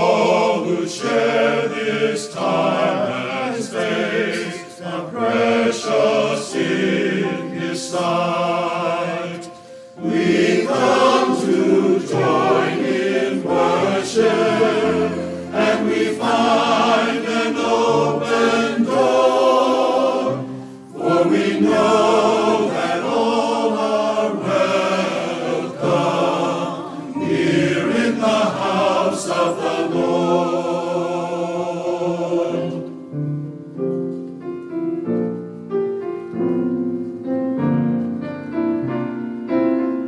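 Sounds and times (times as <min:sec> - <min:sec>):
church choir singing: 0:00.0 - 0:33.2
piano accompaniment: 0:00.0 - 0:40.0.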